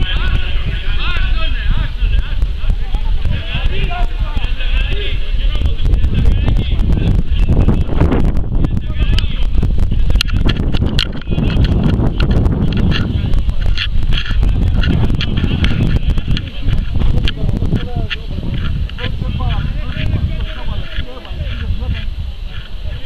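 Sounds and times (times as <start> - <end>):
indistinct raised voices: 0.0 - 23.0
wind buffeting microphone: 0.0 - 23.0.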